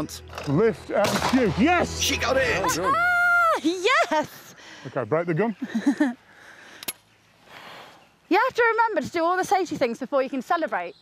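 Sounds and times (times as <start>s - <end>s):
woman laughing: 2.6s - 4.5s, 5.6s - 6.2s.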